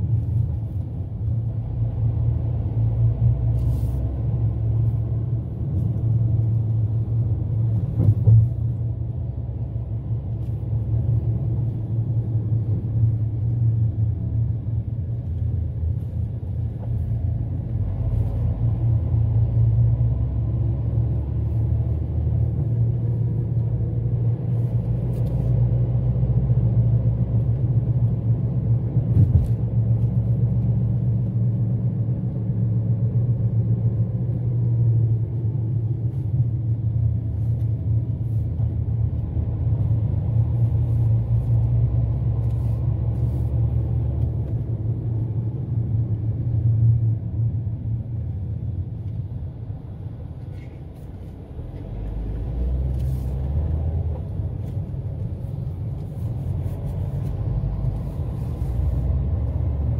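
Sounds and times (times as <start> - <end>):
car engine and tyre rumble: 0.0 - 59.9
short thump: 7.8 - 8.6.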